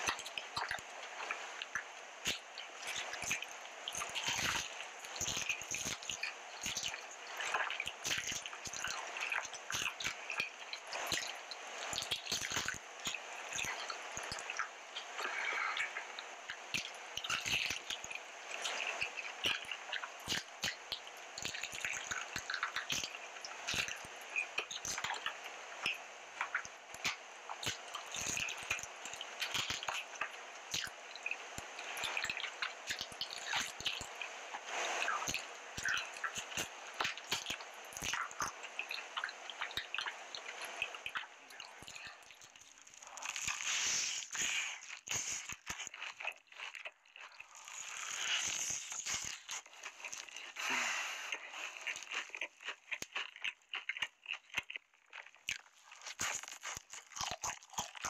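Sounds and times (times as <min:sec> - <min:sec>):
small irregular clicks: 0:00.0 - 0:58.0
wet chewing: 0:00.0 - 0:58.0.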